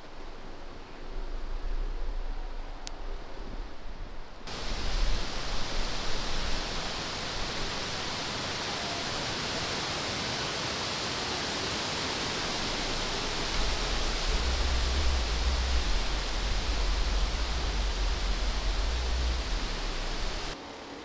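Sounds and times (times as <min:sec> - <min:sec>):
wind rustling leaves: 0:00.0 - 0:21.0
wind buffeting microphone: 0:12.2 - 0:20.6.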